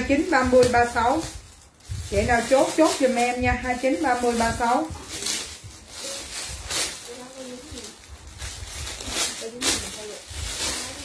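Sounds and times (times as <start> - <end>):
plastic bags crinkling: 0.0 - 11.0
faint voices: 3.3 - 8.2.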